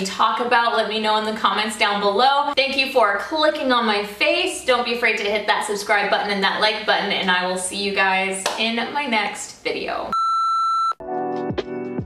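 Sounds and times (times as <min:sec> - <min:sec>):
steady electronic beep: 0:10.1 - 0:11.0.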